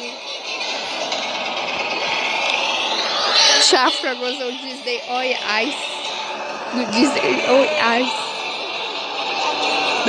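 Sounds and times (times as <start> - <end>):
arena crowd hubbub: 0.0 - 10.0.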